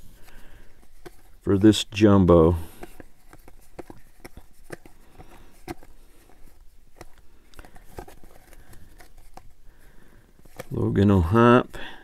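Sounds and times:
trading cards flipped by hand: 0.2 - 1.8, 2.6 - 9.6.

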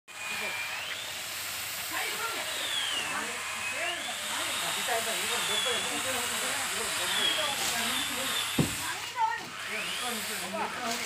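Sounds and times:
chainsaw cutting wood: 0.1 - 11.0.

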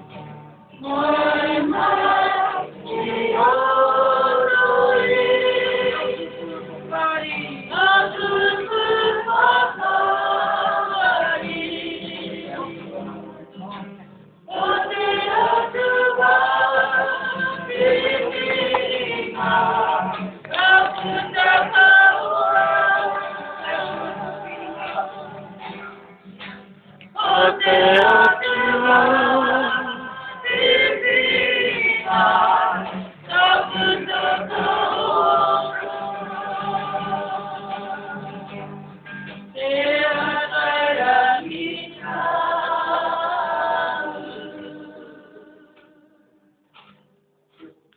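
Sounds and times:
choir singing in harmony: 0.8 - 12.8, 14.5 - 25.7, 27.2 - 38.6, 39.6 - 46.2.

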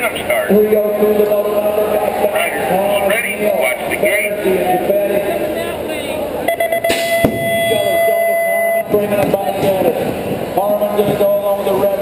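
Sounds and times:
voices echoing in arena: 0.0 - 12.0
electronic buzzer tone: 6.5 - 8.9.

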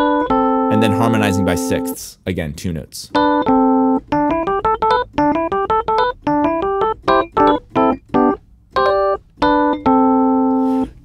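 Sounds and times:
keyboard playing paired notes: 0.0 - 2.1, 3.1 - 11.0.

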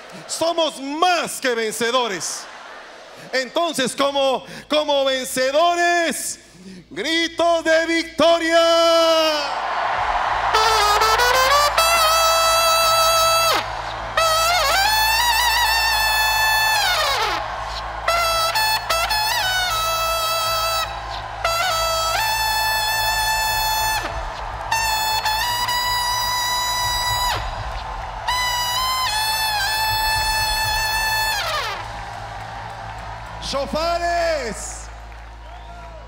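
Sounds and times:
trumpet long blasts: 9.7 - 36.0.

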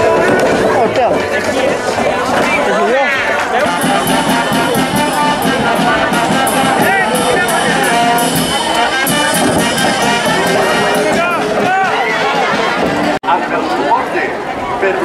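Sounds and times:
brass band music: 0.0 - 13.2
crowd shouting: 0.0 - 15.0.

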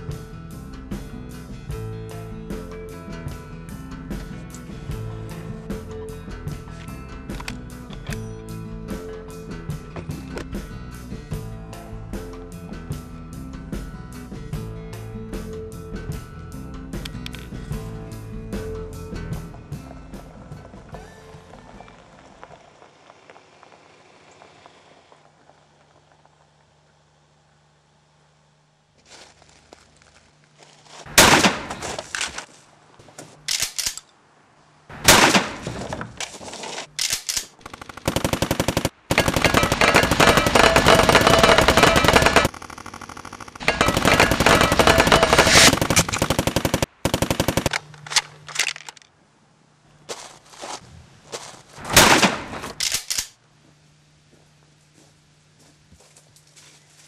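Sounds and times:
single gunshots: 31.2 - 31.9, 35.0 - 35.8, 51.8 - 52.8
automatic gunfire bursts: 37.6 - 47.9.

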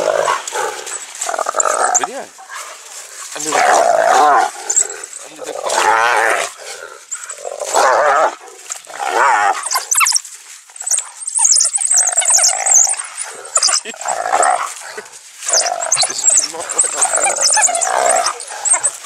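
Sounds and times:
wild dogs twittering: 0.0 - 19.0
hyena giggling calls: 14.8 - 19.0.

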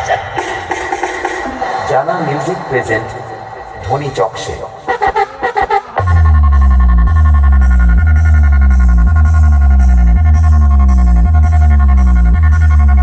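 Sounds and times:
bass-heavy electronic dance music: 0.0 - 13.0.

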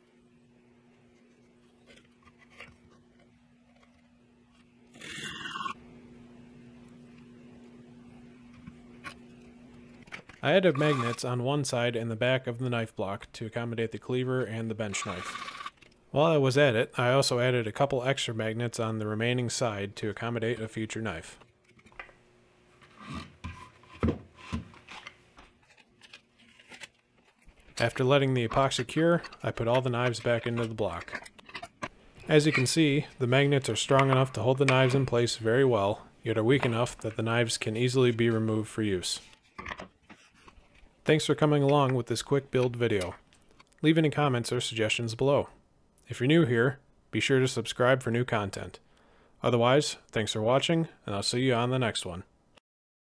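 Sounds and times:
steady low hum: 0.0 - 39.5.

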